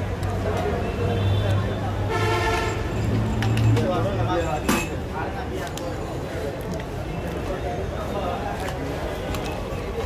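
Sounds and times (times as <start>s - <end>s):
street traffic noise: 0.0s - 10.0s
vehicle horn: 2.1s - 2.8s.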